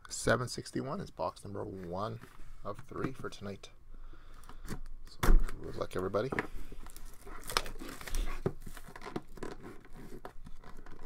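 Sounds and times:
plastic shrink wrap tearing: 6.8 - 11.0.

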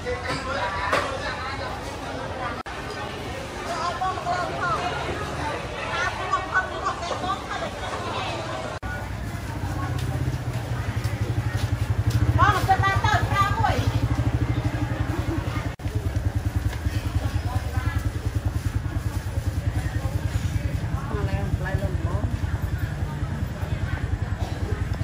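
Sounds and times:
small motorbike engine running: 8.8 - 25.0.

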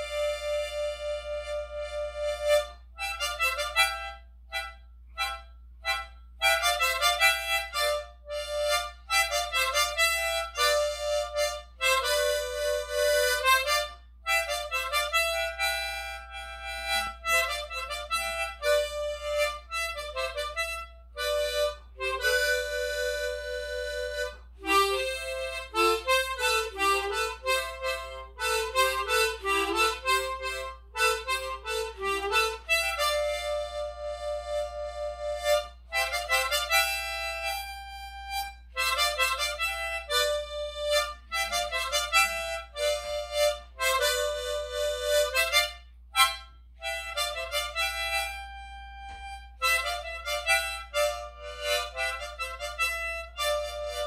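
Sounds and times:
solo harmonica melody: 0.0 - 54.0.

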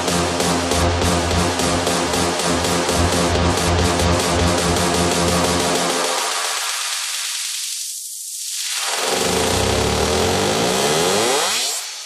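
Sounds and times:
deep bass hum: 0.0 - 5.9
buzzing synth sweep: 0.0 - 6.5.

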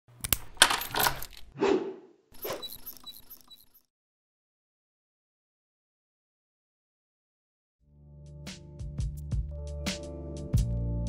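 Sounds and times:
lock opening clunk: 0.2 - 1.5.

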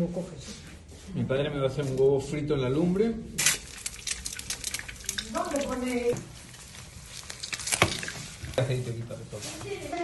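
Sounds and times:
egg sizzling in hot oil: 3.4 - 8.6.

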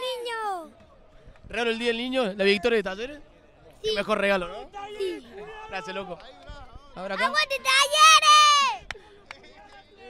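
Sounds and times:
man shouting: 4.8 - 6.1.

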